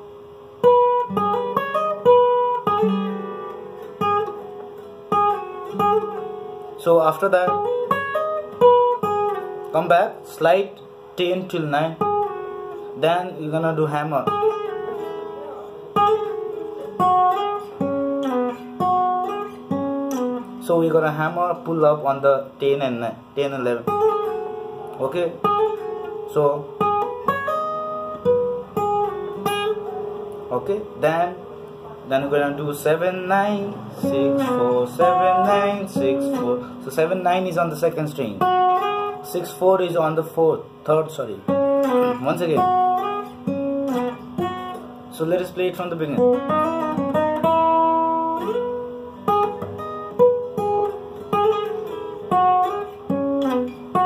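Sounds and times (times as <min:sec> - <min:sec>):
acoustic guitar plucked melody: 0:00.0 - 0:54.0.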